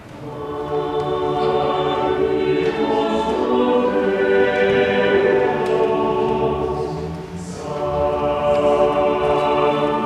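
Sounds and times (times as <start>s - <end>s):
church choir singing: 0.0s - 10.0s.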